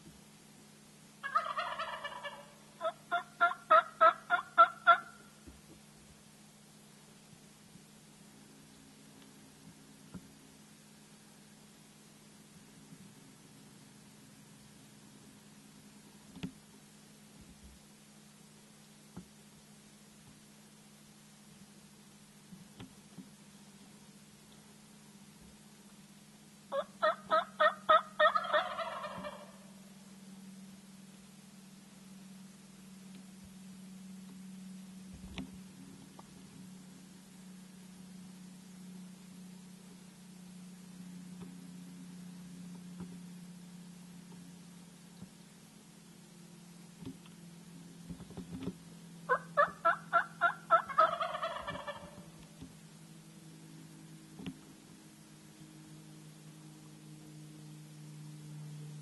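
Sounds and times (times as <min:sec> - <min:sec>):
turkey gobbling: 0:01.2 - 0:05.3, 0:26.7 - 0:29.7, 0:49.3 - 0:52.4
turkey yelps: 0:01.2 - 0:05.3, 0:26.7 - 0:29.7, 0:49.3 - 0:52.3.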